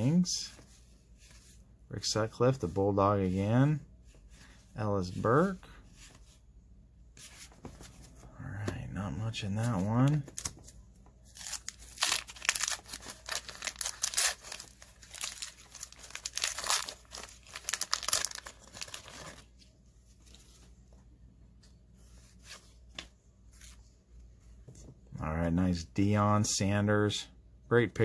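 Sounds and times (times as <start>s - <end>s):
wax paper wrapper tearing and crinkling: 11.4s - 19.4s.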